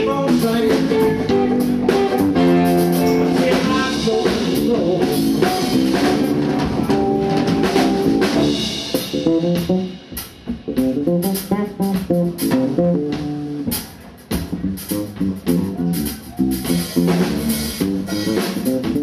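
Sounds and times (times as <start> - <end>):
bass guitar: 0.0 - 19.0
drum kit: 0.0 - 19.0
electric guitar: 0.0 - 19.0.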